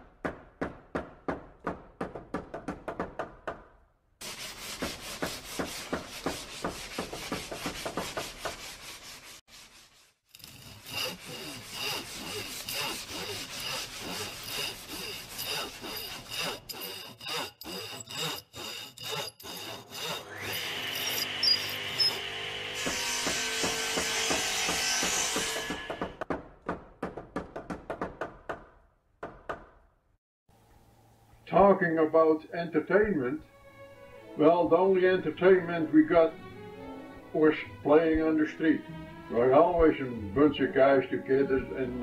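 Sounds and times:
hand saw cutting wood: 0:04.2 - 0:26.2
music: 0:33.0 - 0:42.0.

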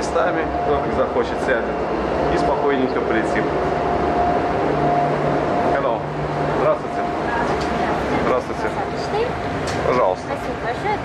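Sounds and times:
people talking: 0:00.0 - 0:03.5, 0:05.6 - 0:11.0
steady mechanical hum: 0:00.0 - 0:11.0.

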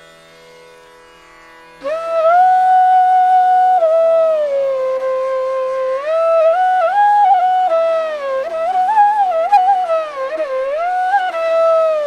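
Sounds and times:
bamboo flute sliding note: 0:01.8 - 0:12.0.

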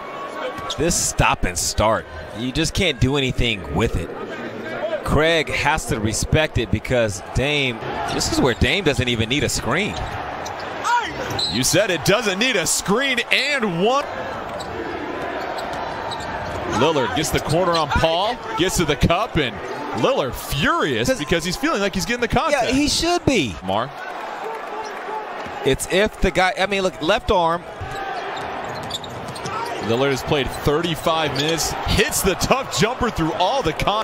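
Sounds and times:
arena crowd noise: 0:00.0 - 0:34.0.

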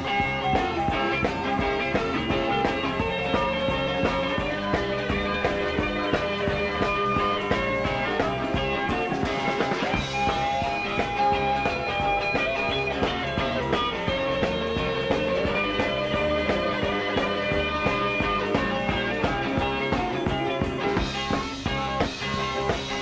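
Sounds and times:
bass: 0:00.0 - 0:23.0
drum beat: 0:00.0 - 0:23.0
electric guitar: 0:00.0 - 0:23.0.

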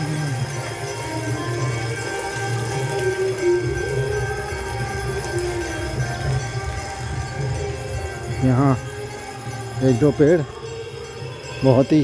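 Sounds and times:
held drone tones: 0:00.0 - 0:12.0
slow wavering melody: 0:00.0 - 0:12.0.

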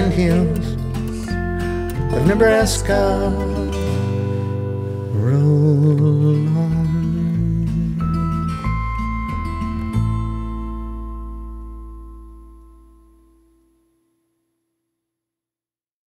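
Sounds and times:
acoustic guitar folk song: 0:00.0 - 0:13.6.

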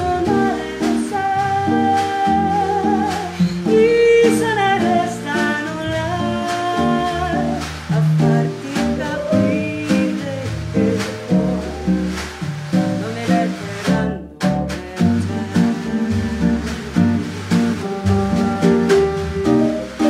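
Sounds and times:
woman singing: 0:00.0 - 0:17.8
bossa nova band: 0:00.0 - 0:20.0.

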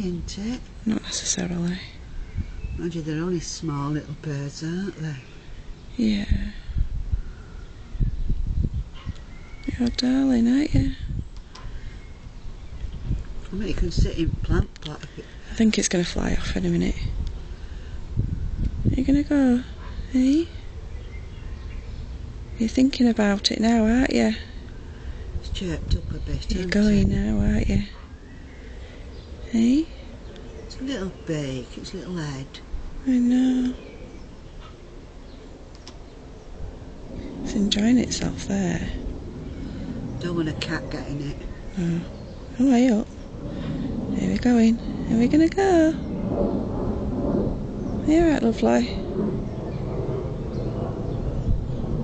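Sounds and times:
low rumble: 0:00.0 - 0:52.0.

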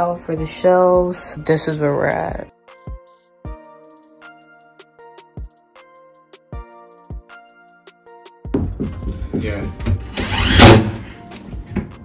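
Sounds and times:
cordless drill driving a screw: 0:10.0 - 0:11.0.

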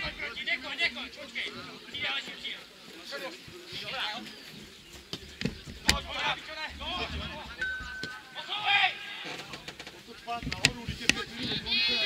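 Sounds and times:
players shouting: 0:05.9 - 0:09.4, 0:10.7 - 0:12.0.

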